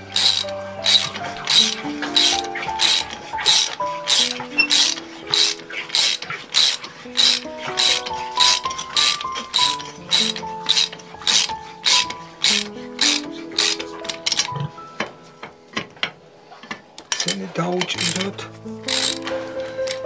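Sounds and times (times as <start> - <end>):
ratchet wrench clicking: 0.0 - 14.6, 17.0 - 20.0
background music with melody: 0.0 - 20.0.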